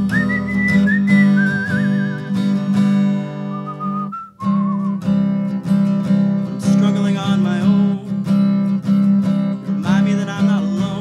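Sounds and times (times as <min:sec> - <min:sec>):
person whistling a melody: 0:00.0 - 0:02.8, 0:03.4 - 0:05.2
strummed acoustic guitar: 0:00.0 - 0:11.0.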